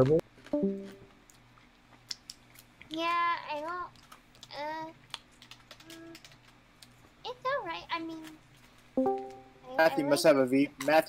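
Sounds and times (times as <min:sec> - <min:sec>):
faint keyboard typing: 0:02.2 - 0:07.0.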